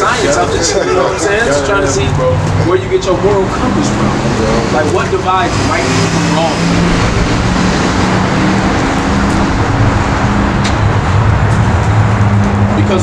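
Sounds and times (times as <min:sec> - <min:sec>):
traffic noise: 0:00.0 - 0:13.0
vehicle engine running: 0:00.0 - 0:13.0.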